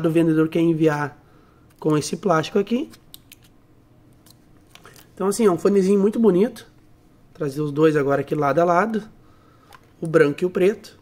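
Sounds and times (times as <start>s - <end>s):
plastic film crinkling: 4.3s - 5.2s.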